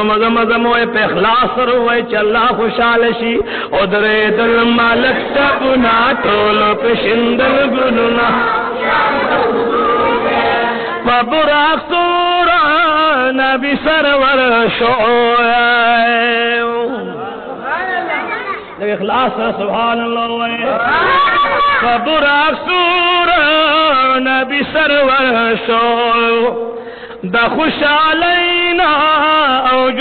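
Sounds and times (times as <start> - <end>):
man chanting devotional verse: 0.0 - 8.8, 10.6 - 17.6, 18.8 - 20.9, 21.8 - 30.0
soft overlapping voices: 0.0 - 30.0.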